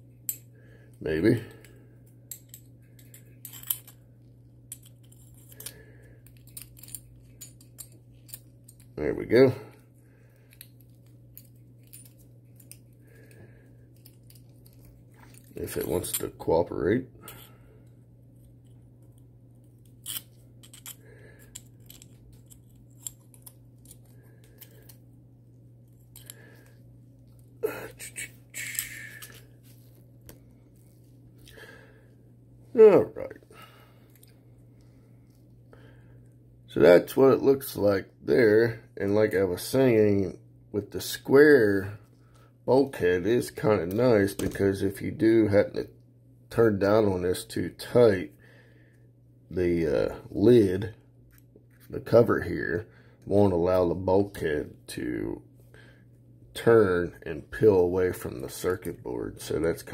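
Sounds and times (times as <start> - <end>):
steady low hum: 0.0 - 59.9
small metallic clicks and scrapes: 18.4 - 25.0.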